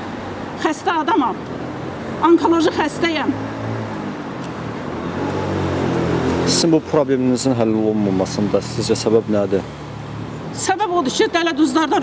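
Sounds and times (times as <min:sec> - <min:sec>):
street traffic engine hum: 0:00.0 - 0:12.0.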